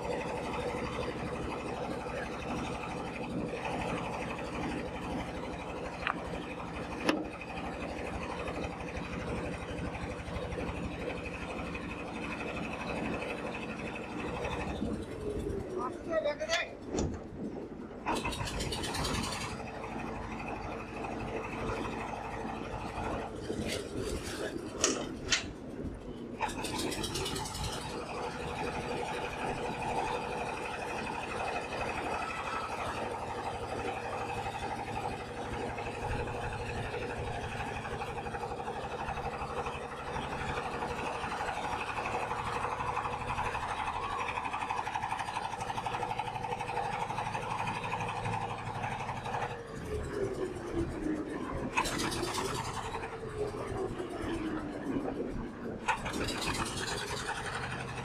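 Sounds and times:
small boat engine running: 0:00.0 - 0:58.0.

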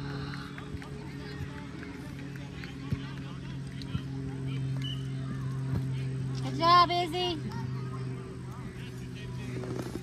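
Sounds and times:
faint distant voices: 0:00.0 - 0:10.0
low motor-like hum: 0:00.0 - 0:10.0.

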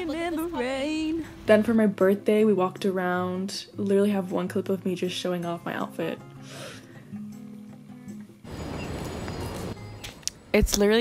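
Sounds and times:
background music: 0:00.0 - 0:11.0
traffic: 0:08.4 - 0:10.6.

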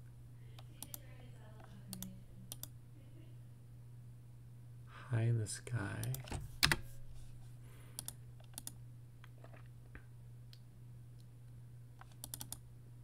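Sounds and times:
steady low hum: 0:00.0 - 0:13.0
keyboard key clicks: 0:06.0 - 0:06.8, 0:12.0 - 0:12.6.

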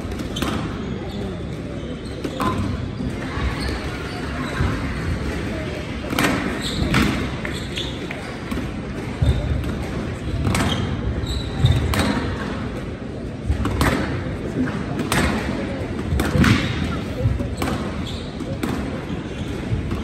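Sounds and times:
squash ball cracking off racquets and walls: 0:06.0 - 0:11.0, 0:13.4 - 0:20.0.

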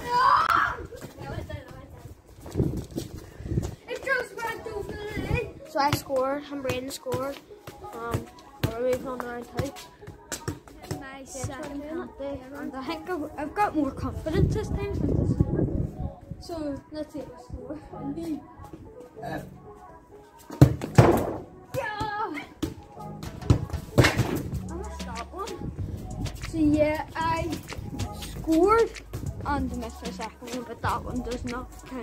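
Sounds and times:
children's voices: 0:03.8 - 0:09.7, 0:26.4 - 0:32.0
boy talking: 0:03.9 - 0:09.7, 0:11.0 - 0:15.2, 0:26.4 - 0:32.0
football knocking on paving: 0:20.6 - 0:24.4.

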